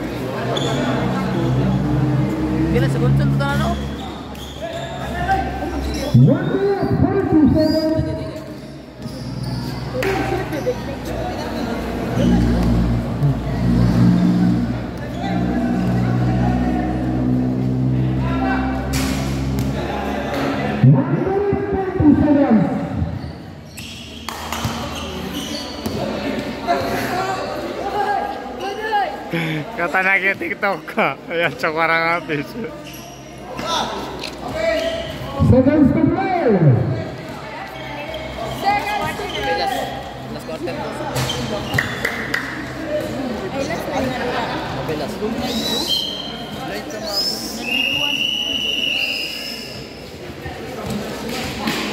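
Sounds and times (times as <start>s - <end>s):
people talking: 0.0s - 23.3s, 24.5s - 51.9s
murmur of voices: 0.0s - 51.9s
shrill whistle blasts: 45.6s - 46.4s, 47.1s - 49.9s.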